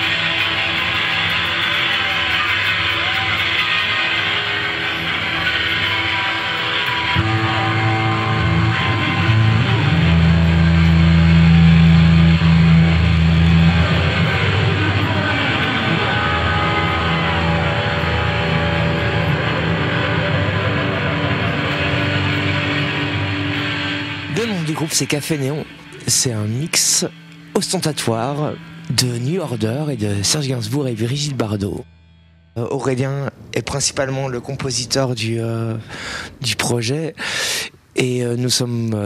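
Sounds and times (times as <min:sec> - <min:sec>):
live pop band playing: 0:00.0 - 0:29.8
electric guitar: 0:00.0 - 0:32.6
deep bass notes: 0:03.5 - 0:33.5.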